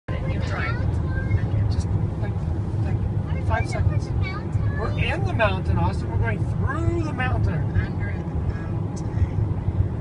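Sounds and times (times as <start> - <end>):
car road and engine rumble: 0.1 - 10.0.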